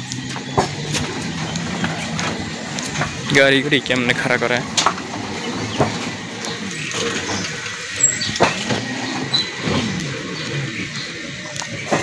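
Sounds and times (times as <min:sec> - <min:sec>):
motor vehicle running: 0:00.0 - 0:12.0.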